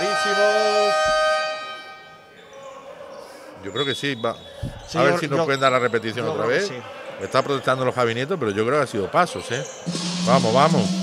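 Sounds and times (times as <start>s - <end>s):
referee's whistle: 0.0s - 2.5s, 3.7s - 6.1s.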